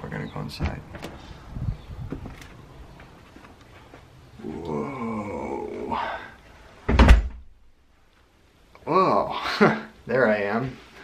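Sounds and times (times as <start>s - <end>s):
door shutting with a thud: 6.9s - 7.5s.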